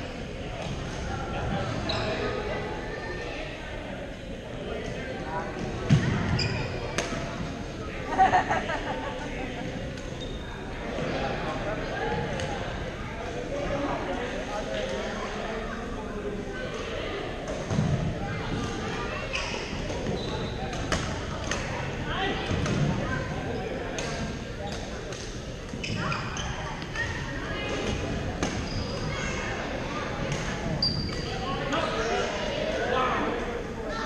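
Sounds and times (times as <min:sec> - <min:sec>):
players' voices: 0:00.0 - 0:34.0
sneakers squeaking on court floor: 0:01.7 - 0:02.3, 0:05.9 - 0:07.2, 0:10.2 - 0:10.6, 0:19.3 - 0:21.2, 0:23.5 - 0:29.4, 0:30.3 - 0:32.1.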